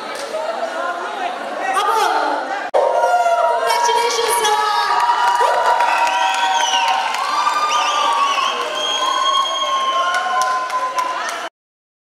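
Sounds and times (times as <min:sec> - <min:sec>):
audience cheering and shouting: 0:02.8 - 0:11.5.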